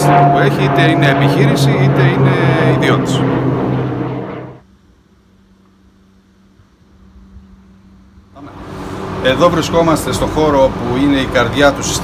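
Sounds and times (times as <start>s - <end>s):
low rumble: 0.0s - 4.8s.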